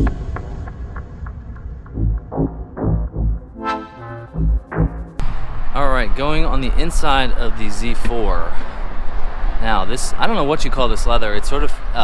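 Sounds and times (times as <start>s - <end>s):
background music: 0.0s - 5.2s
man speaking: 5.8s - 8.6s.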